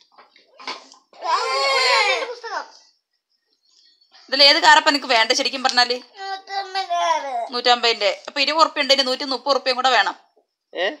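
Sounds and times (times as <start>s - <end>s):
child's drawn-out vocal call: 1.2s - 2.7s.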